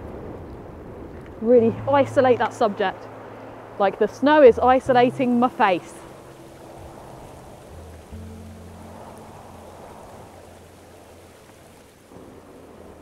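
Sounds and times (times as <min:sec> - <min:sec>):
rushing mountain stream: 0:00.0 - 0:13.0
soft background music: 0:01.4 - 0:03.2, 0:04.1 - 0:11.8.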